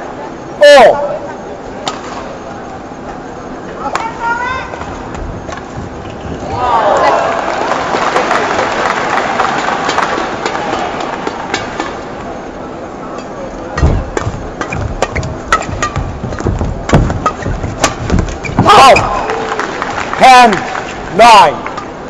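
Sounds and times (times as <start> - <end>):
arena crowd noise: 6.0 - 14.7, 18.6 - 22.0
racket striking shuttlecock: 9.9 - 12.0, 13.8 - 18.6
footsteps thumping on court: 13.8 - 19.2.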